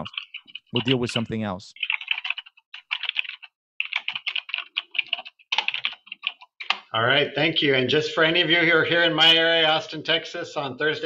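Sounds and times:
typing on computer keyboard: 0.0s - 6.9s.

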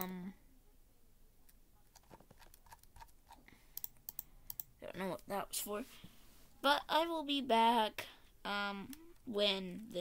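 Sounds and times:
computer mouse clicks: 1.5s - 4.7s.

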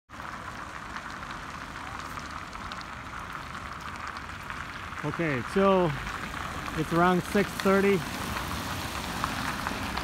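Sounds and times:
steady outdoor hiss: 0.1s - 10.0s.

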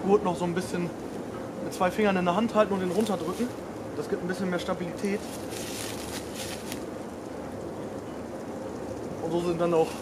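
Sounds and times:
faint steady hum: 0.0s - 10.0s
steady hiss: 0.0s - 10.0s.

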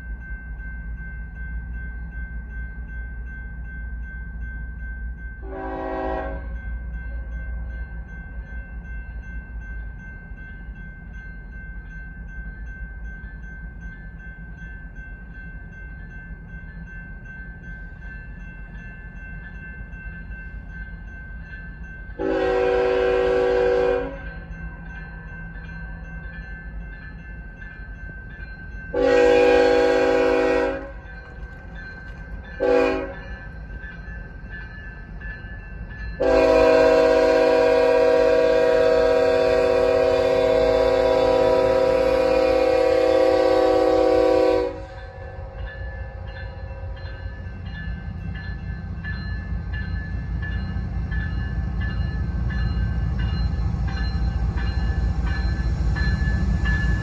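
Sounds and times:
crossing signal bell ringing: 0.0s - 57.0s
locomotive air horn: 5.4s - 6.6s, 22.2s - 24.3s, 29.0s - 31.0s, 32.6s - 33.2s, 36.2s - 45.0s.

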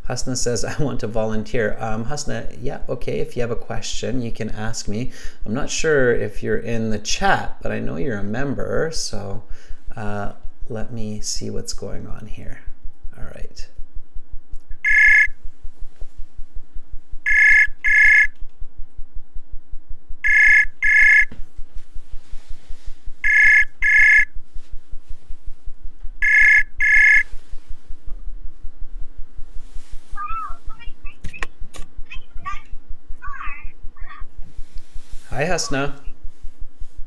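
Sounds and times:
call ringing tone beeps: 14.8s - 15.4s, 17.3s - 18.3s, 20.2s - 21.3s, 23.2s - 24.3s, 26.2s - 27.3s.

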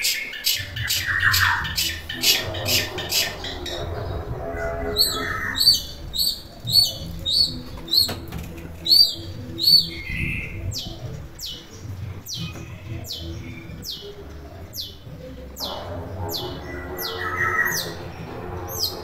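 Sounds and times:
shrike calling: 0.0s - 11.7s, 12.3s - 19.0s.

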